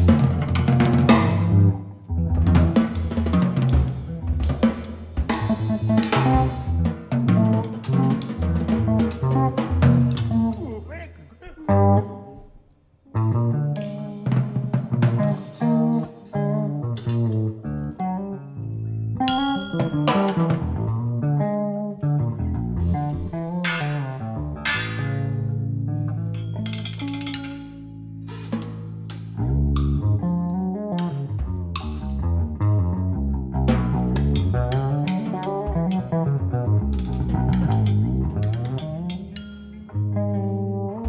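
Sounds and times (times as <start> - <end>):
plucked electric bass: 0.0 - 41.0
drum and cymbal strikes: 3.0 - 10.6, 28.3 - 29.4.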